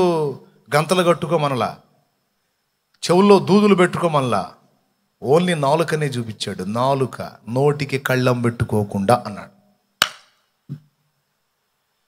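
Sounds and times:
sharp click: 10.0s - 10.9s.

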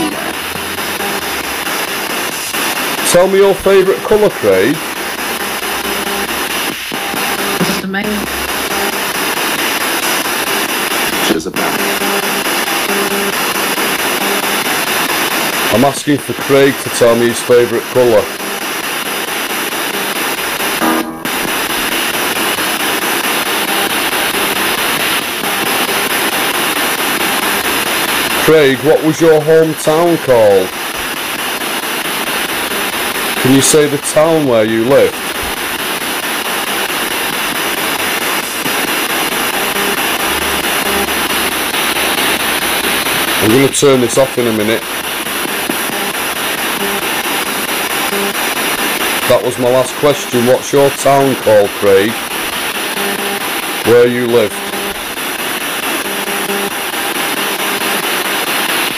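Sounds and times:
choppy radio static: 0.0s - 58.9s
snatches of radio broadcast: 0.0s - 58.9s.

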